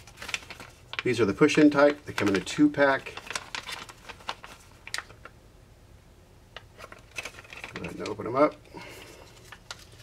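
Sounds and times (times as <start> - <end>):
plastic bag crinkling: 0.0 - 5.3, 6.6 - 10.0.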